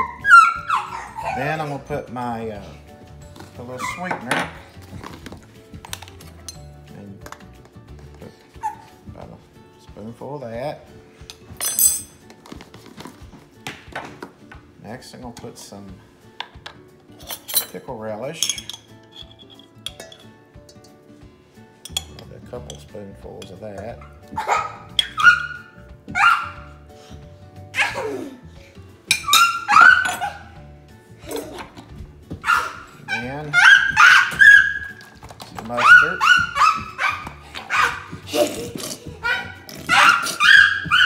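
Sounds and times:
dog whining: 0.0s - 1.7s, 8.5s - 9.0s, 24.4s - 26.7s, 29.1s - 30.6s, 32.4s - 35.1s, 35.8s - 38.3s, 39.0s - 41.0s.

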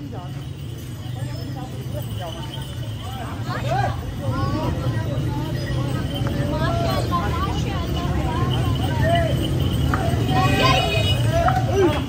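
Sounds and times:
low rumble of street traffic: 0.0s - 12.0s
men talking and calling out: 0.0s - 12.0s.

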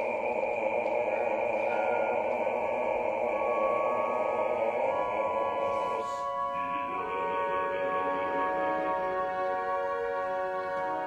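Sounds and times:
orchestra sustained chord: 0.0s - 11.0s.

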